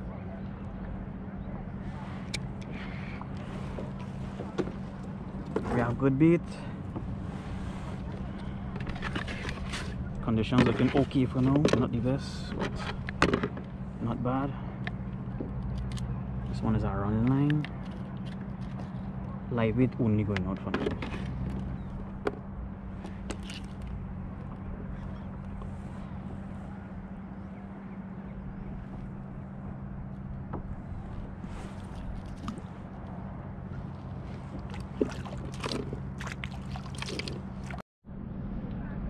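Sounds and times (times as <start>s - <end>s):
steady low hum: 0.0s - 39.0s
water lapping against kayak hull: 1.8s - 6.0s, 6.6s - 11.6s, 20.9s - 37.8s
fishing gear knocks and clicks: 23.0s - 24.6s, 34.3s - 37.8s.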